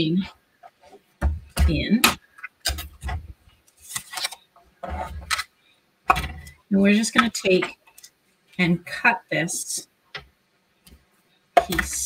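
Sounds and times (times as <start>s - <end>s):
plastic plates handled: 0.6s - 8.2s, 11.6s - 12.0s.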